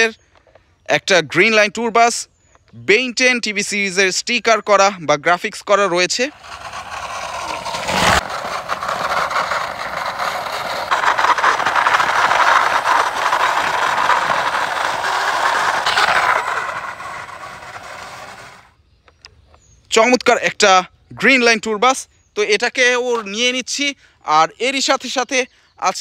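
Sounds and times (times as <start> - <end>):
toy wheels scraping on concrete: 5.6 - 18.8, 22.5 - 23.8.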